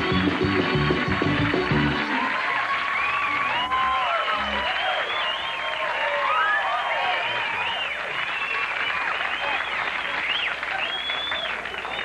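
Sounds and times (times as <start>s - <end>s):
audience applauding: 0.0s - 12.0s
high whoops: 2.2s - 8.7s.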